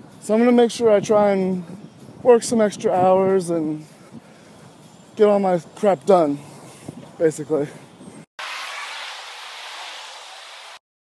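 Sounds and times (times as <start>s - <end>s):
cars driving past: 8.4s - 10.8s
tyres hissing on road: 8.4s - 10.8s.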